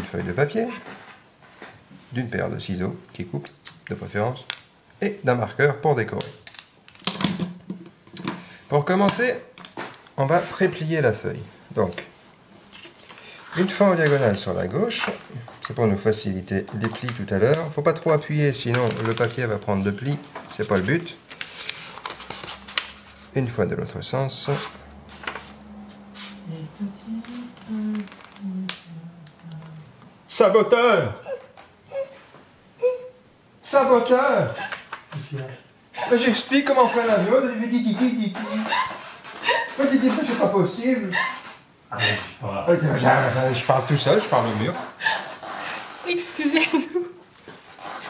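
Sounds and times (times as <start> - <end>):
paper being folded: 18.6 - 23.4, 24.5 - 25.6, 27.3 - 28.5
person humming: 26.1 - 30.0.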